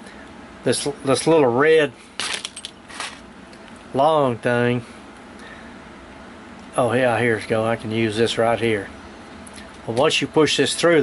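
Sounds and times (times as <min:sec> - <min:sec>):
metal screws clicking and rattling: 0:02.2 - 0:03.2.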